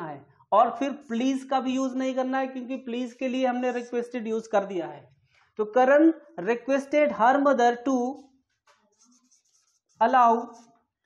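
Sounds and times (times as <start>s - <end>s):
person speaking: 0.0s - 8.3s, 9.0s - 10.6s
marker scratching on whiteboard: 7.9s - 10.8s.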